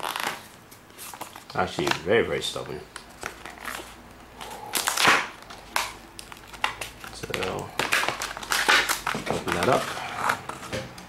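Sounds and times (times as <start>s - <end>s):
plastic packaging crackling: 0.0s - 10.8s.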